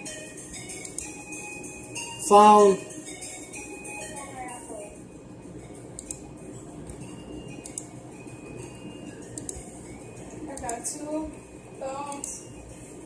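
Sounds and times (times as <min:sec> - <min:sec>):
faint music: 0:00.0 - 0:13.0
steady low background noise: 0:00.0 - 0:13.0.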